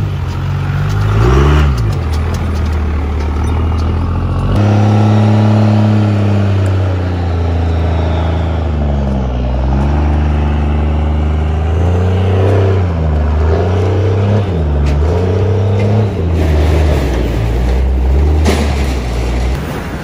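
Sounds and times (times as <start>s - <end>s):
diesel engine under heavy throttle: 0.0s - 20.0s.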